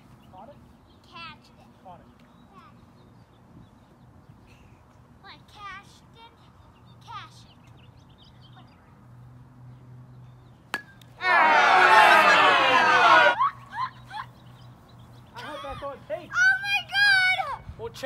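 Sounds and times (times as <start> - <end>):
crowd cheering: 11.2 - 13.8
high-pitched excited yelling: 11.2 - 14.2, 16.3 - 17.6.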